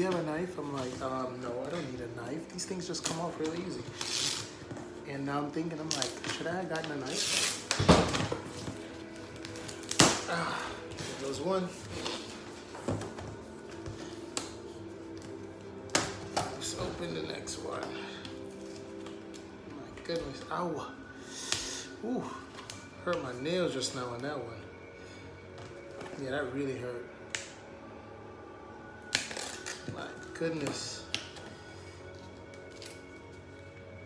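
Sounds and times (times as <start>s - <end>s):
quiet background music: 0.0s - 34.0s.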